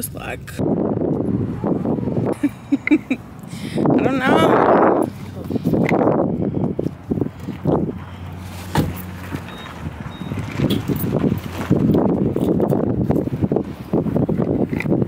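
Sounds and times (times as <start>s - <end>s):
vehicle engine humming: 0.0s - 15.0s
wind buffeting microphone: 0.0s - 15.0s.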